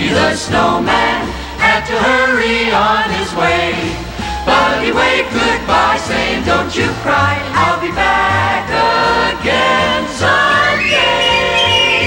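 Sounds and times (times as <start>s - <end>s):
choir singing: 0.0s - 12.0s.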